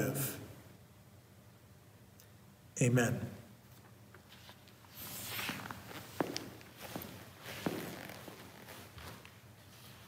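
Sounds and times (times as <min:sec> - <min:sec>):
footsteps on hardwood floor: 0:05.4 - 0:10.0.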